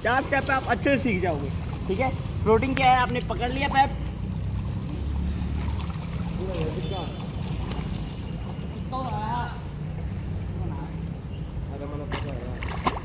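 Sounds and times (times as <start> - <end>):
pool water moving: 0.0 - 13.0.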